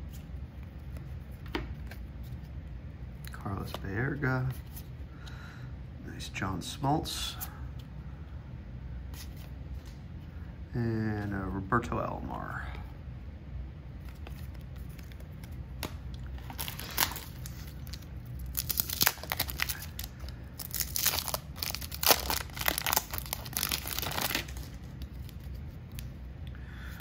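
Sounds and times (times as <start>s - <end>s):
wax paper wrapper tearing: 16.3s - 25.6s.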